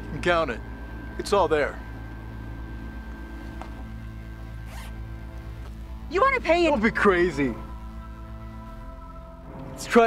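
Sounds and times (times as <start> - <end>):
background music: 0.0 - 10.0
zipper pulled open: 4.6 - 5.1.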